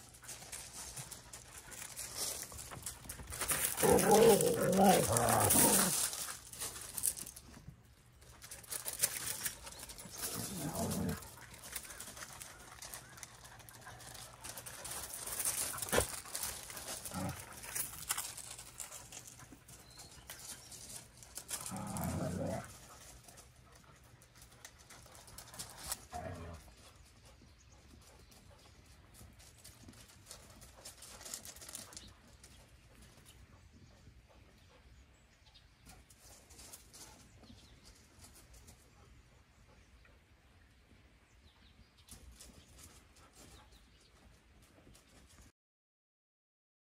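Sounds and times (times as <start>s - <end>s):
dog whining: 3.8s - 5.9s.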